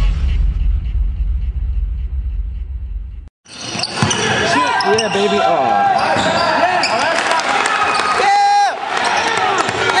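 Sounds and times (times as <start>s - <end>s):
basketball bouncing on court: 3.8s - 4.4s.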